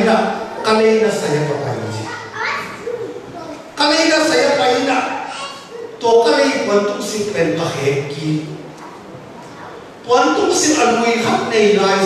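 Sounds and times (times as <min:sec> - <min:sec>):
man preaching into microphone: 0:00.0 - 0:02.1, 0:03.8 - 0:08.6, 0:10.0 - 0:12.0.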